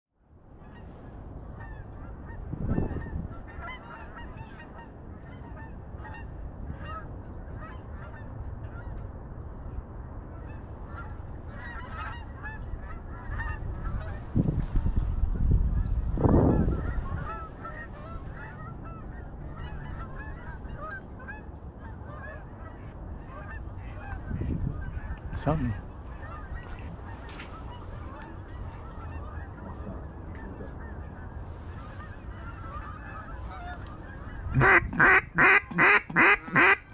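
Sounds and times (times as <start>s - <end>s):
wind on microphone: 0.3s - 36.9s
geese honking: 1.6s - 9.0s, 10.3s - 14.4s, 15.0s - 36.9s.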